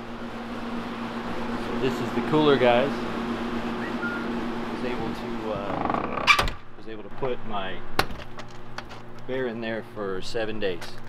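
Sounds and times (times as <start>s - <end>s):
refrigeration unit humming: 0.0s - 11.0s.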